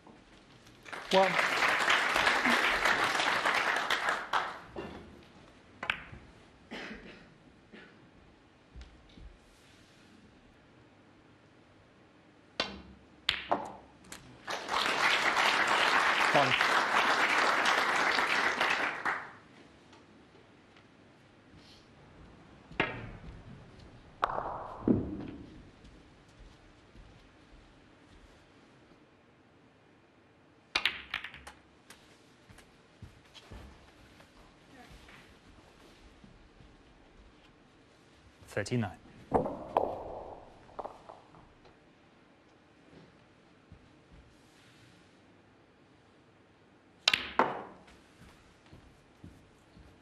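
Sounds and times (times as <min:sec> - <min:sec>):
snooker balls clicking: 0:05.2 - 0:06.4, 0:12.6 - 0:14.2, 0:22.7 - 0:25.6, 0:30.7 - 0:32.7, 0:39.2 - 0:41.8, 0:47.0 - 0:48.1
cue tip striking ball: 0:12.6 - 0:13.8, 0:24.2 - 0:25.5, 0:39.3 - 0:41.6, 0:47.0 - 0:47.9.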